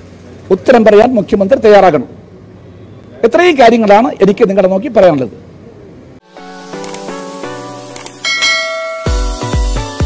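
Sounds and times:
click and bell-like ding: 8.3s - 9.2s.

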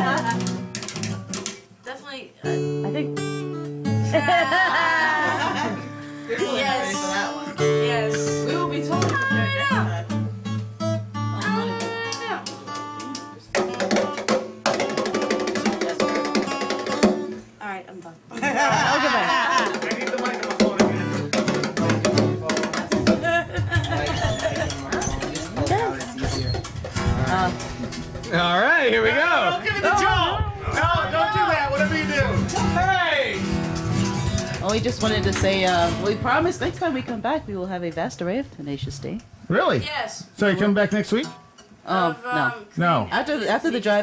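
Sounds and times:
acoustic guitar playing: 0.0s - 44.0s.

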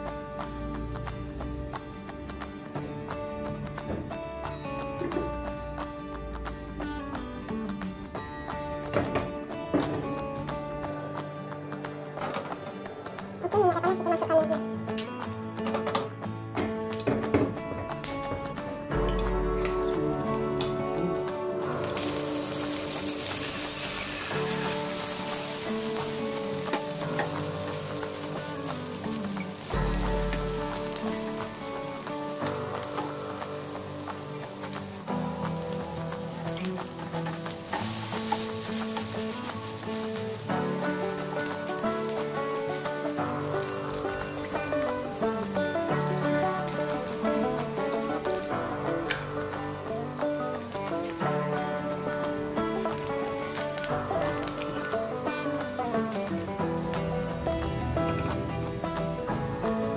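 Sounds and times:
background music: 0.0s - 59.9s
food sizzling in hot oil: 18.9s - 59.9s.

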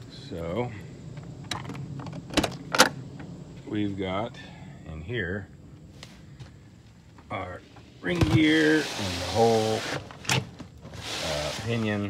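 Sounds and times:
door opening: 1.4s - 3.0s.

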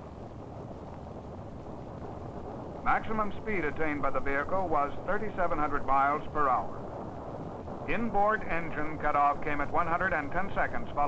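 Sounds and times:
rocket engines rumbling: 0.0s - 11.0s.

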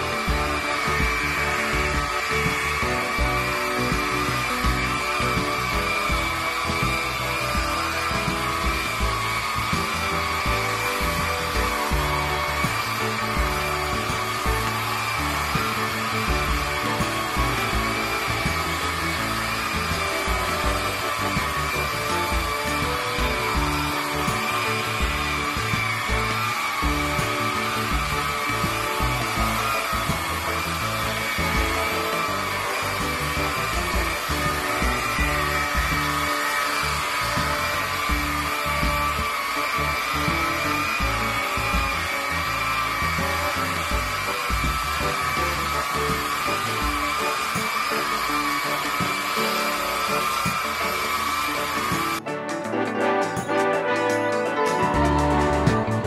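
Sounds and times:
angle grinder motor whine: 0.0s - 52.2s
background music: 0.0s - 56.0s.

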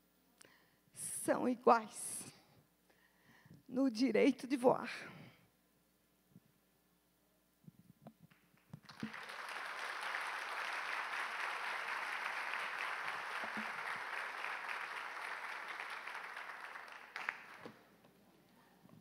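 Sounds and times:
audience applauding: 8.8s - 17.9s.

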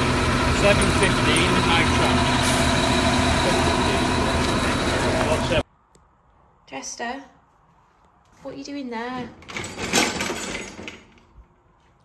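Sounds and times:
dishwasher racks rattling and clinking: 9.4s - 11.1s.

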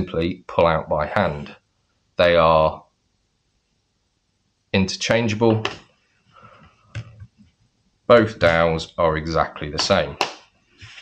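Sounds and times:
soft rustle of handling: 10.6s - 11.0s.

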